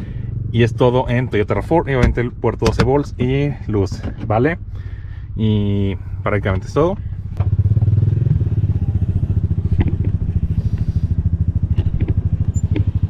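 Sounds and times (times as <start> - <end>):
engine idling: 0.0 - 13.0.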